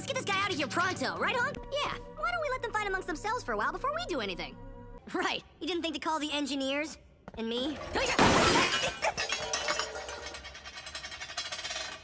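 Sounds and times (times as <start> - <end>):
glass shards tinkling: 8.4 - 12.0.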